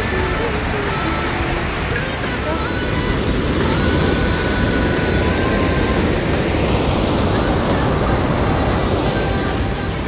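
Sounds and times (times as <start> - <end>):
whitewater rushing over rocks: 0.0 - 10.0.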